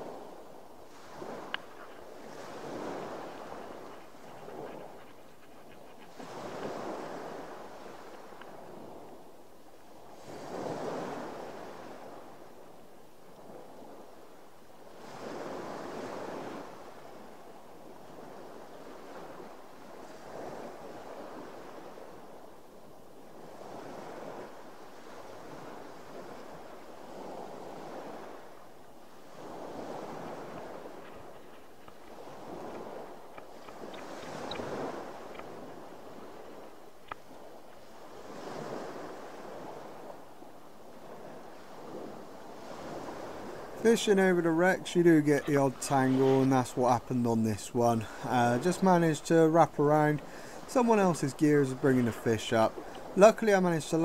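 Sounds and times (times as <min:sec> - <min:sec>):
sea waves washing past boat: 0:00.0 - 0:54.0
faint clicks: 0:01.5 - 0:02.0, 0:31.0 - 0:35.5, 0:37.0 - 0:37.3.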